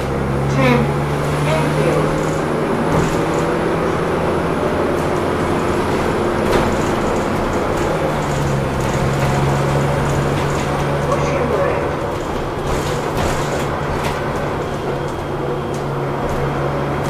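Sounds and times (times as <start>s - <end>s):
bus engine drone: 0.0s - 17.0s
road noise: 0.0s - 17.0s.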